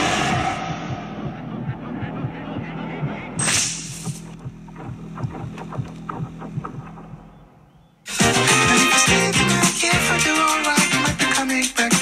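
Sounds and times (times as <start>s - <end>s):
low pulsing throb: 0.0s - 8.8s
steady hum: 0.0s - 9.4s.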